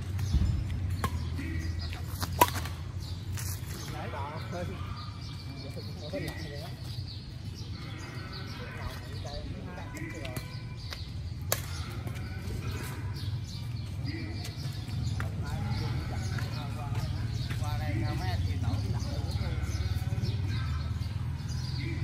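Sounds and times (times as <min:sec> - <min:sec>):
distant voices: 0:00.0 - 0:22.0
rackets hitting shuttlecock: 0:00.1 - 0:03.6, 0:10.3 - 0:11.8.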